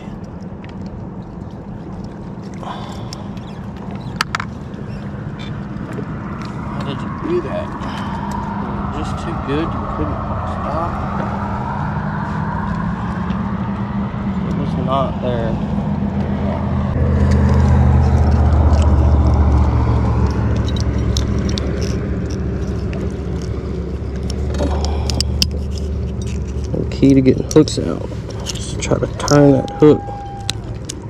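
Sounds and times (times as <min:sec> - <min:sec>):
motor engine droning: 0:00.0 - 0:31.0
metallic clicks and rattles: 0:17.2 - 0:29.5.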